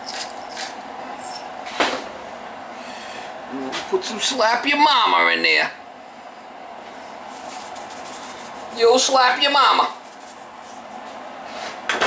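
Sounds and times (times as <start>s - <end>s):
shaker can rattling: 7.3s - 11.0s.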